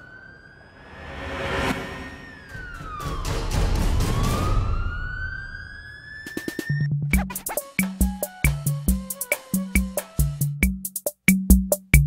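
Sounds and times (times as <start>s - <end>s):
siren wailing: 0.0s - 6.9s
music with deep bass: 6.8s - 12.0s.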